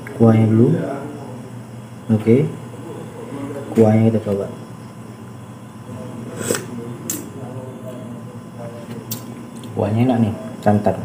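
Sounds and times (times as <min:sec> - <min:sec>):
quiet eating sounds: 0:02.6 - 0:09.8.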